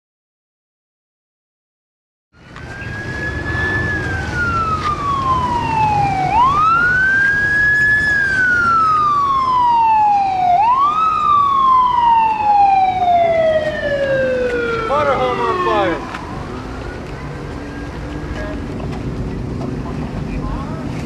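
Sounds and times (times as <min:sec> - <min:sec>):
emergency vehicle siren wailing: 0:02.4 - 0:18.8.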